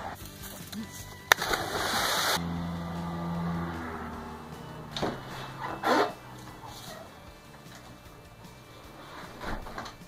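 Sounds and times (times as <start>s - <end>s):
low hum of held tones: 2.4s - 9.2s.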